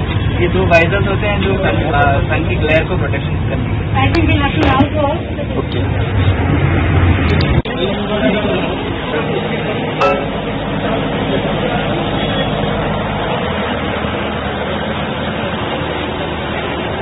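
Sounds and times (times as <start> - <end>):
bus engine idling: 0.0 - 17.0.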